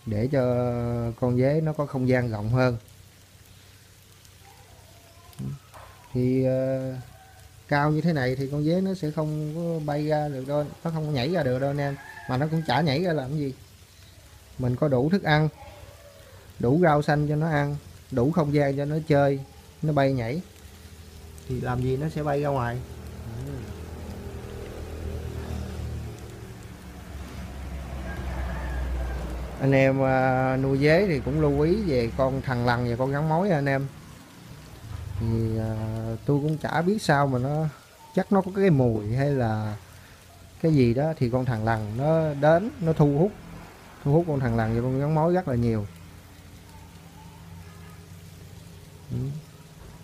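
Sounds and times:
crickets pattering and rustling: 0.0s - 50.0s.

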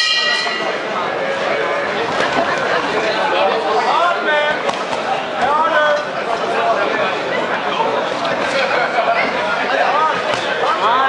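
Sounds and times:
boxing ring bell ringing: 0.0s - 0.9s
spectators talking: 0.0s - 11.0s.

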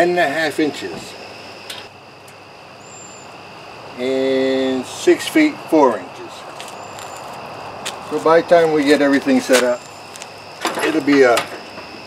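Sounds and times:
high insect chirring: 0.0s - 12.0s.

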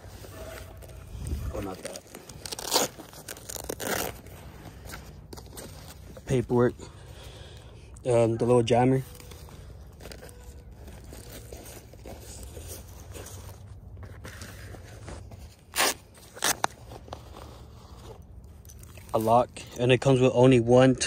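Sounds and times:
fabric case scraping and rustling: 0.0s - 6.8s, 8.8s - 19.3s.

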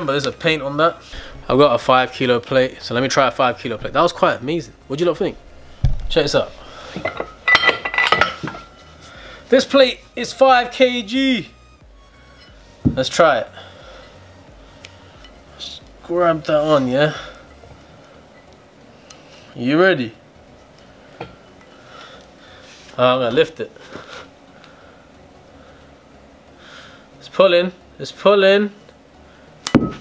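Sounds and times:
weight plates clanking: 5.3s - 8.8s.

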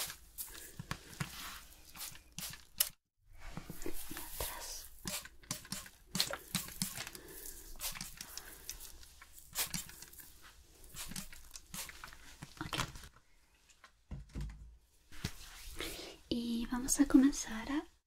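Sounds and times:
hair being handled: 0.0s - 13.2s
spray bottle spritzing: 1.3s - 3.0s, 4.8s - 12.2s.

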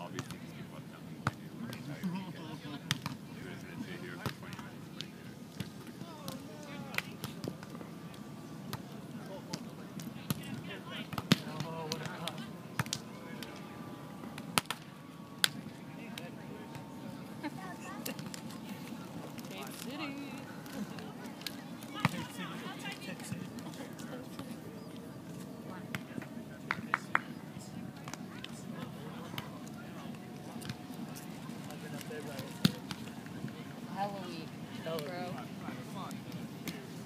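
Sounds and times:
hands slapping volleyball: 11.1s - 13.5s, 14.6s - 15.6s.

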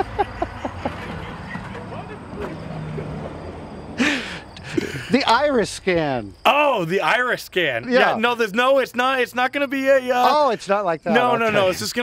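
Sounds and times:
loud voiced laugh: 0.0s - 5.3s
people laughing quietly: 0.0s - 5.3s.

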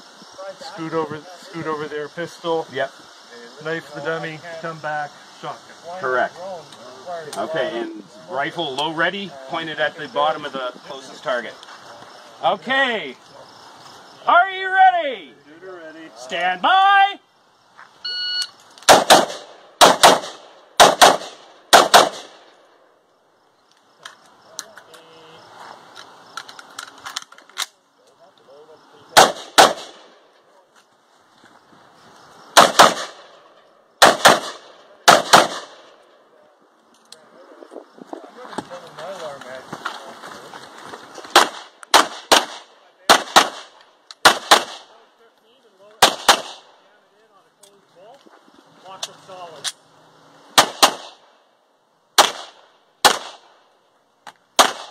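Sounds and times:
rifle gunshots: 18.9s - 22.4s, 29.2s - 30.2s, 32.6s - 33.4s, 34.0s - 35.9s, 41.3s - 45.0s, 46.0s - 46.7s, 50.6s - 51.3s, 52.2s - 53.5s, 54.6s - 54.9s.

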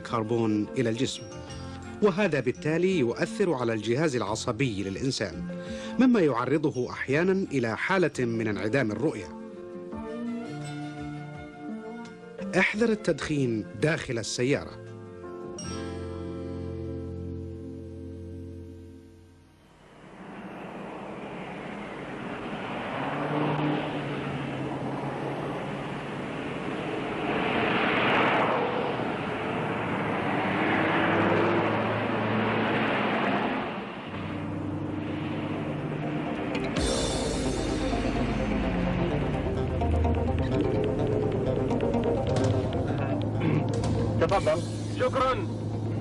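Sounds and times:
soft music: 0.0s - 19.4s, 34.2s - 46.0s
cars driving past: 19.6s - 46.0s
held musical chord: 34.3s - 46.0s.

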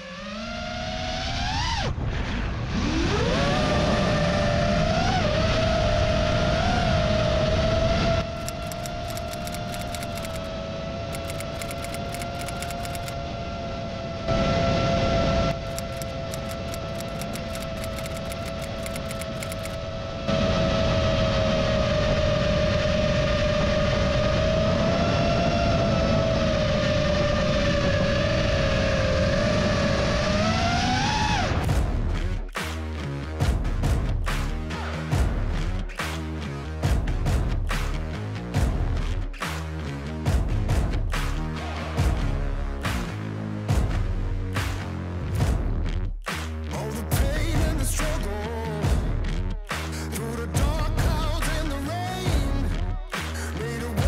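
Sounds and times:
drone motors whining: 8.2s - 13.2s, 15.5s - 20.4s
wind rushing over microphone: 19.7s - 31.9s.

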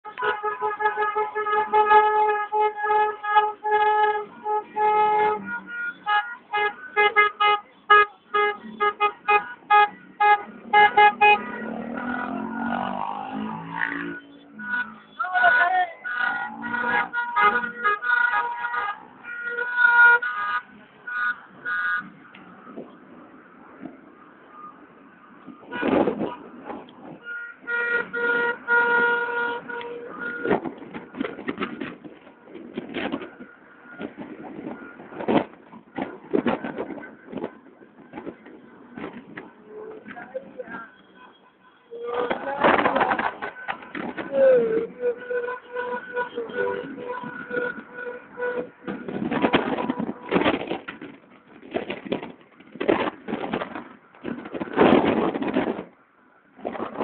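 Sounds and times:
car horns honking: 0.0s - 22.9s, 25.5s - 31.8s, 38.5s - 51.1s.

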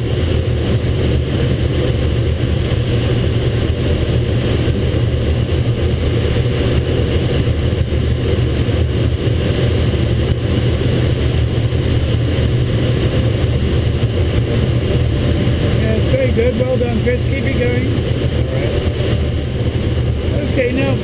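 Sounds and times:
airflow rushing in cockpit: 0.0s - 21.0s.

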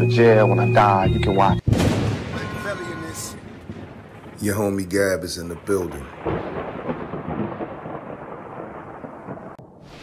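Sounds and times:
low thunder-like rumble: 1.7s - 10.0s.

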